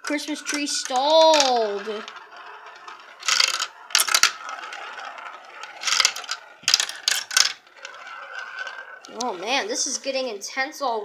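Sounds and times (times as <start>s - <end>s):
marbles rolling through plastic run: 0.0s - 10.8s
marble whirring around funnel: 0.0s - 11.0s.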